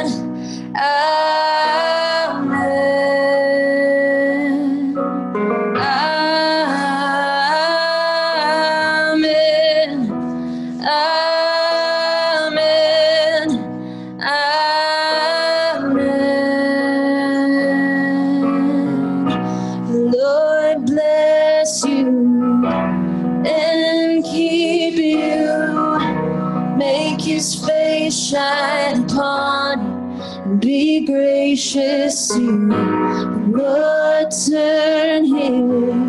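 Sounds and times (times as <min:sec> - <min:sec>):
women singing worship song: 0:00.0 - 0:05.0, 0:05.8 - 0:22.8, 0:23.4 - 0:36.0
electric keyboard accompaniment: 0:00.0 - 0:36.0.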